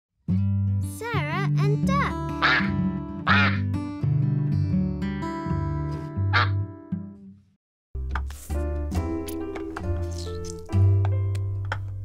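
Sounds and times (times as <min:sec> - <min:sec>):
cartoon duck quacks: 0:02.4 - 0:02.7, 0:03.3 - 0:03.6, 0:06.3 - 0:06.6.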